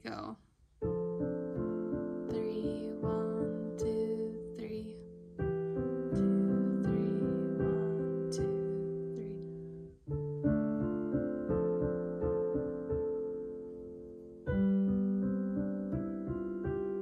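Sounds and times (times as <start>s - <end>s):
piano playing held chords: 0.8s - 17.0s.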